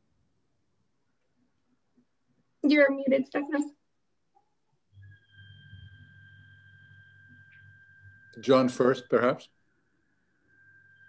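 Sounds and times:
high-pitched whine: 4.9s - 11.0s.

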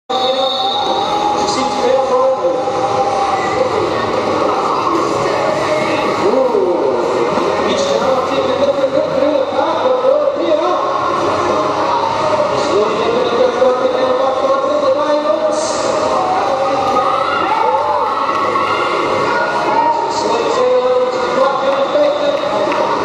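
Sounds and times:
hubbub of voices and shouts: 0.1s - 23.0s.

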